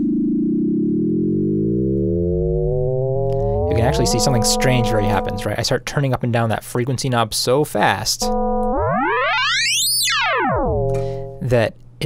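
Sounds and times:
steady low synth note: 0.0 - 5.6, 8.2 - 11.5
synthesizer tone sweeping up and down: 0.0 - 5.6, 8.2 - 11.4.

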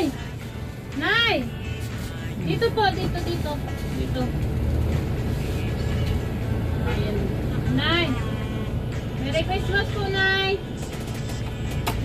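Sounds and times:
vehicle engine idling: 0.0 - 12.0.

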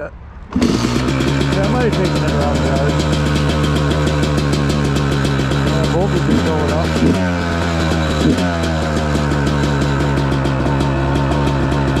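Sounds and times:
two-stroke engine idling: 0.5 - 12.0.

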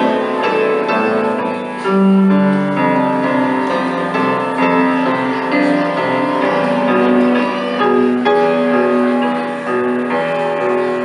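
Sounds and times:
upright piano playing: 0.0 - 11.0.

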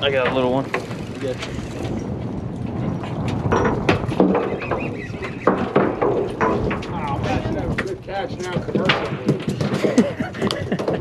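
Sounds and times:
low rumble: 0.0 - 9.3.

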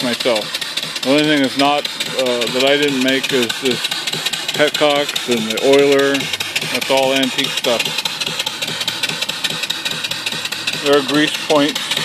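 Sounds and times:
steam engine running: 0.0 - 12.0.

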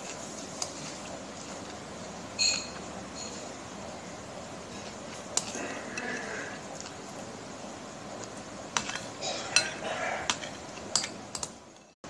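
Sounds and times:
low background noise: 0.0 - 12.0
metal spoon clinking ceramic bowl: 8.8 - 11.9.

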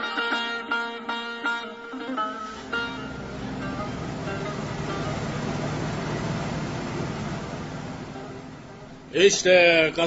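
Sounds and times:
vehicle engine driving: 2.4 - 10.0.

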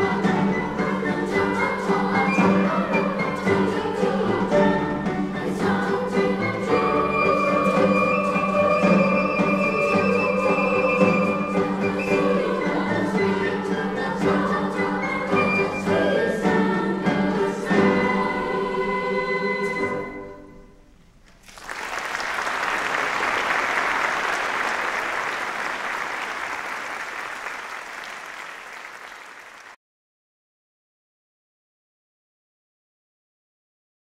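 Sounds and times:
youth choir singing: 0.0 - 20.3
applause: 21.3 - 29.8.

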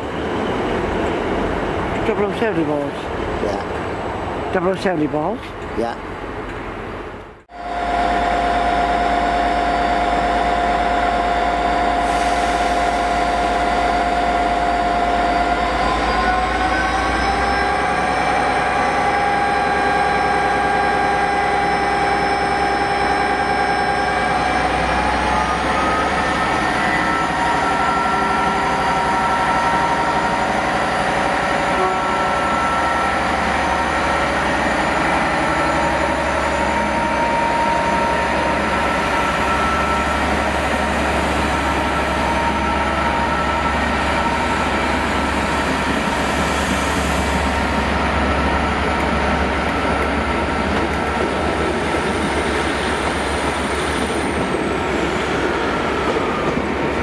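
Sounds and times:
diesel locomotive engine whining: 0.0 - 57.0.

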